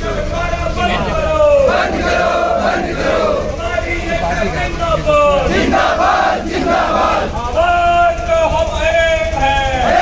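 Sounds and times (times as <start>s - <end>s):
crowd of men shouting slogans: 1.2s - 3.6s, 5.3s - 7.4s, 9.7s - 10.0s.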